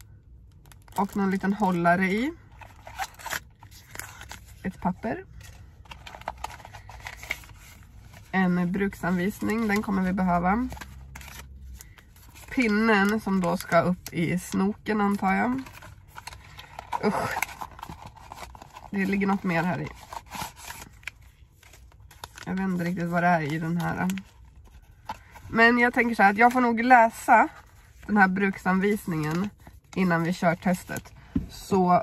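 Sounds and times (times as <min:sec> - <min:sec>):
packaging rustling and crinkling: 0:02.5 - 0:04.8, 0:05.4 - 0:14.1, 0:15.1 - 0:26.6.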